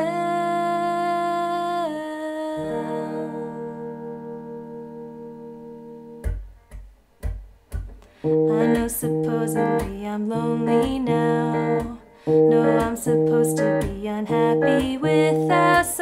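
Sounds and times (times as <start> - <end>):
electric guitar strumming: 2.6 - 16.0
sharp guitar strikes: 4.7 - 16.0.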